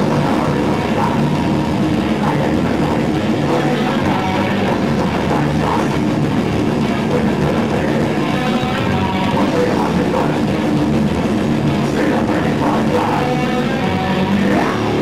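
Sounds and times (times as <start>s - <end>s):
metalcore band playing: 0.0s - 15.0s.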